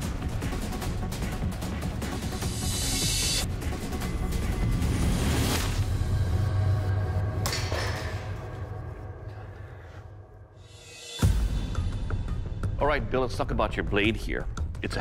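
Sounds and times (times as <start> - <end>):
dramatic background music: 0.0 - 15.0.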